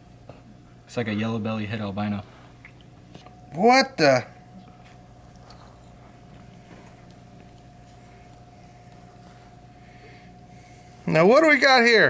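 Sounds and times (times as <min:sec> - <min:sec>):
faint steady whine: 0:00.0 - 0:12.0
low electrical hum: 0:00.0 - 0:12.0.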